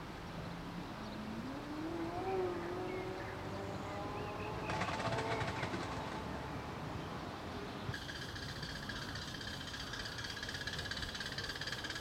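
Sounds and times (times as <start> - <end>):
fast run of clicks: 4.7 - 6.1.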